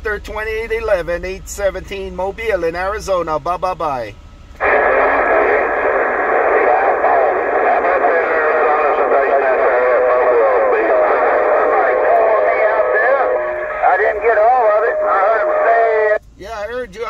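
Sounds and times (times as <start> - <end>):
radio hiss: 4.6 - 16.2
radio voices talking: 4.6 - 16.2.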